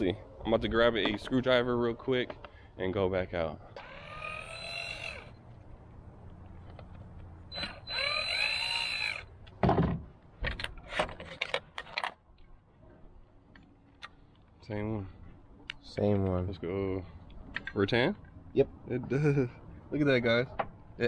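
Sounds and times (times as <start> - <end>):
cordless drill whining: 3.8 - 5.5, 7.5 - 9.3.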